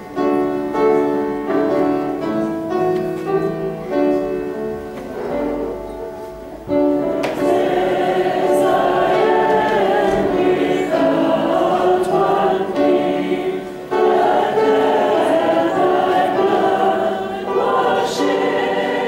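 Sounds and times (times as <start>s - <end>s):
group singing a hymn: 7.0s - 19.0s.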